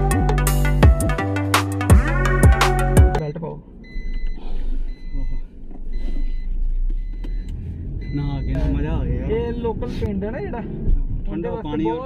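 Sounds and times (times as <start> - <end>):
car interior rumble: 3.2 - 12.0.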